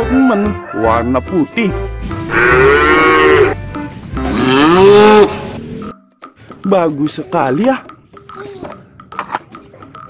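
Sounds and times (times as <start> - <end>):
cow mooing: 2.3 - 3.6, 4.2 - 5.6.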